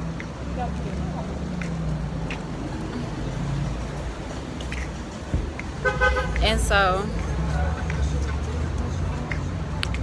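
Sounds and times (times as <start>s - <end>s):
low rumble of vehicles: 0.0s - 10.0s.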